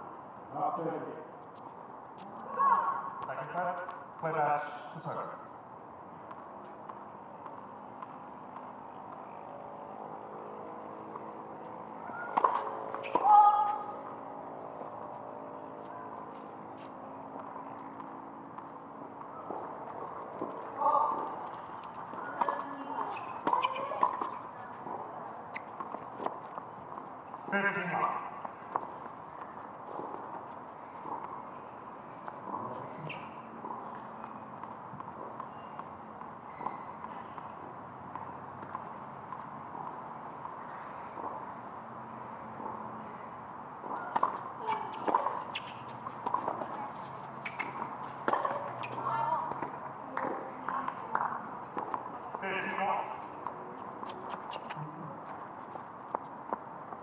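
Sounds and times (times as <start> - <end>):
tennis balls struck and bouncing: 5.7 - 57.0.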